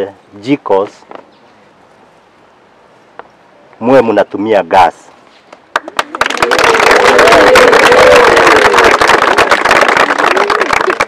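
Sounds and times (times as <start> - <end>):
audience clapping: 5.6 - 11.0
audience cheering: 5.8 - 11.0.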